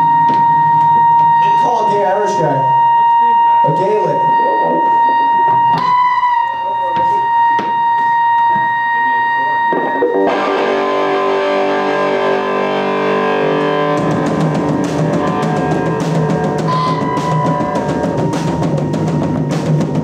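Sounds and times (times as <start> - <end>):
distorted electric guitar chord: 0.0 - 20.0
guitar amplifier feedback whine: 0.0 - 20.0
drums: 9.5 - 20.0.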